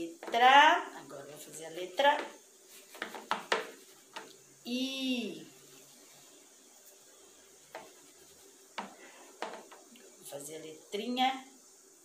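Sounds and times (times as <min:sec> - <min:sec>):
soft taps: 0:02.2 - 0:04.4, 0:07.7 - 0:08.0, 0:08.8 - 0:09.9
fingertip rubbing through cornmeal: 0:07.7 - 0:09.2.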